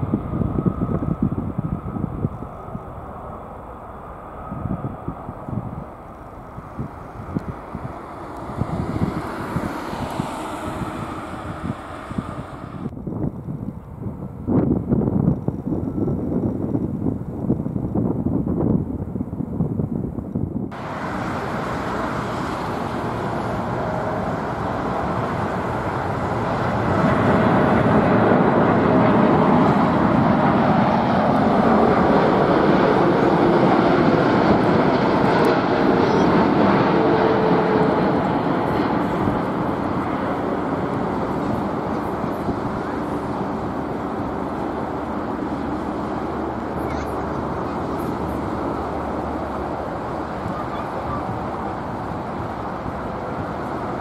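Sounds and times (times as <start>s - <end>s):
jet engine noise with faint tone: 0.0s - 54.0s
jet engine rumble: 0.0s - 54.0s
wind on microphone: 0.0s - 54.0s.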